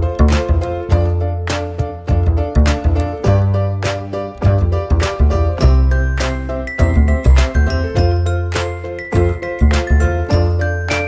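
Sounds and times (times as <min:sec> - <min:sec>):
low bass line: 0:00.0 - 0:10.8.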